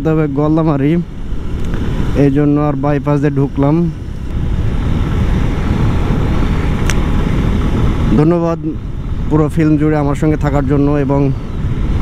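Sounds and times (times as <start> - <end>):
motorcycle running: 0.0 - 12.0
road noise: 0.0 - 12.0
wind buffeting microphone: 0.0 - 12.0.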